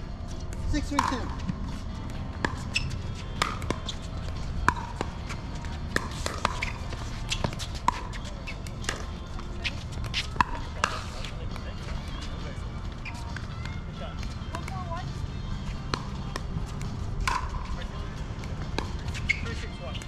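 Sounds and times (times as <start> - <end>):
ball bouncing on court: 0.5 - 11.2, 15.8 - 17.8, 18.4 - 19.4.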